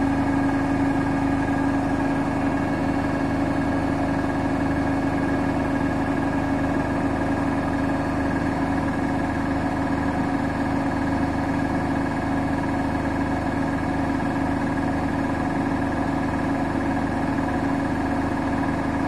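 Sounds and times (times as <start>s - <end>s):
washing machine hum: 0.0s - 19.0s.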